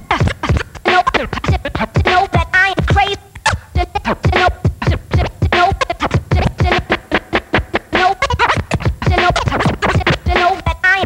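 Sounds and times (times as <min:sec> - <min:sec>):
vinyl record scratching: 0:00.0 - 0:11.0.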